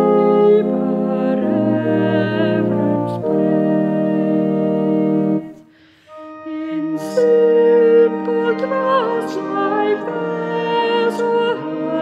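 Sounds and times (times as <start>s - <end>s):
instrumental hymn music: 0.0s - 12.0s.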